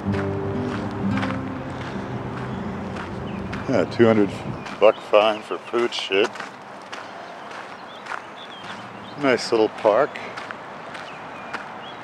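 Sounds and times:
footsteps on paved path: 0.0 - 12.0.

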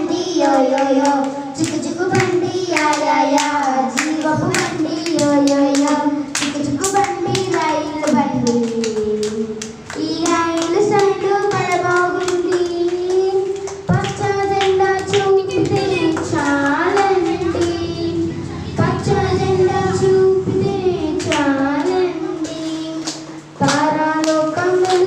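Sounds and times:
children singing in unison: 0.0 - 25.0
hands clapping in time: 0.4 - 17.9, 21.2 - 25.0.

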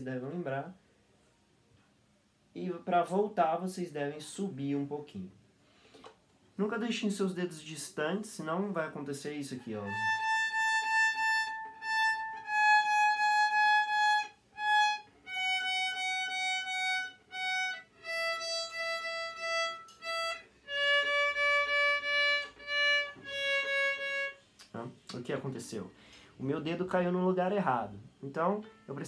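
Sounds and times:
violin playing scale: 9.6 - 24.4.

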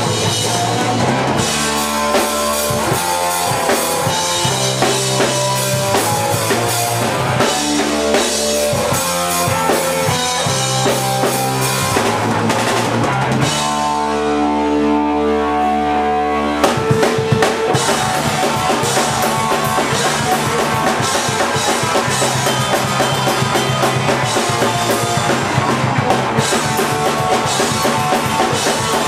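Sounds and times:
drum kit: 0.0 - 29.0
rock band playing: 0.0 - 29.0.

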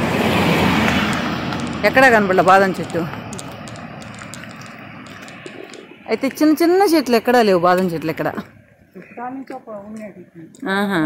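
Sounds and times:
small car passing: 0.0 - 8.6
person speaking: 1.8 - 11.0.

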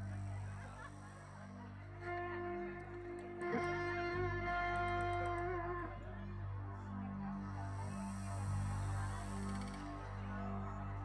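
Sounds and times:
low sustained bass note: 0.0 - 11.0.

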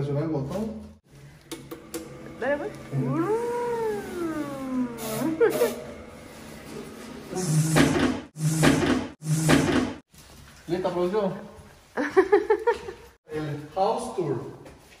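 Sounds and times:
shoe-polishing machine brushes whirring: 1.1 - 10.0
person's drawn-out vocal sound: 3.0 - 5.7.

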